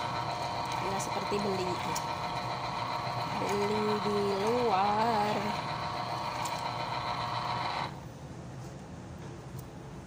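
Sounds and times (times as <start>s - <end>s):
citrus juicer motor whine: 0.0s - 8.0s.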